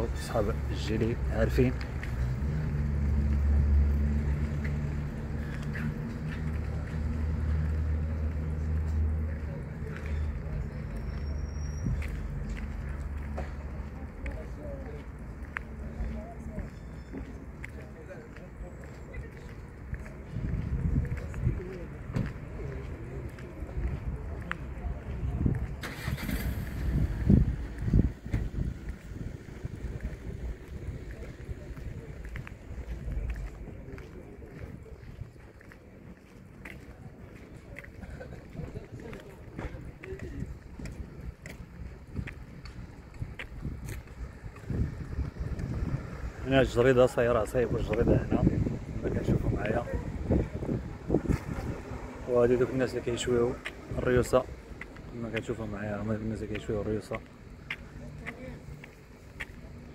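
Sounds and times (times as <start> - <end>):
vehicle engine rumbling: 0.0 - 59.9.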